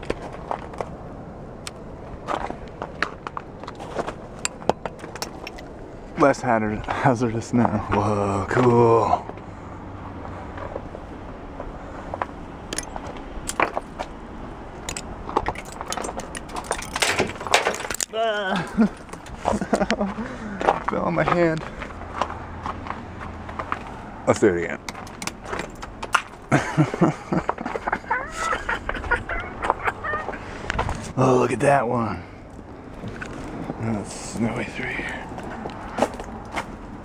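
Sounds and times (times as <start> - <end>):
ice snapping clinks: 4.4 - 5.7
icicles breaking: 4.4 - 5.8, 12.7 - 14.0, 14.8 - 19.4
person laughing: 18.1 - 20.7, 26.5 - 30.6
sharp knocks and snaps: 24.8 - 26.4.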